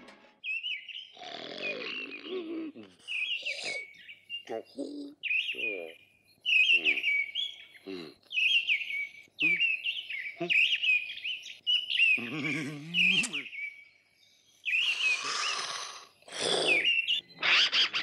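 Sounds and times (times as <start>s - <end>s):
small songbirds chirping: 0.4s - 17.4s.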